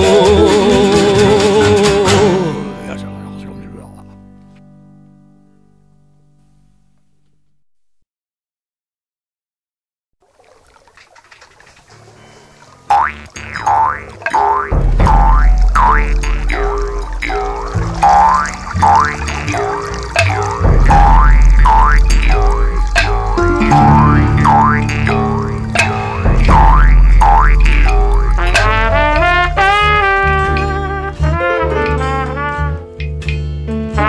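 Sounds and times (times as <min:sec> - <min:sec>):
instrumental band music: 0:00.0 - 0:04.6, 0:12.6 - 0:34.0
swooping lead notes: 0:13.4 - 0:31.2
low bass notes: 0:14.6 - 0:34.0.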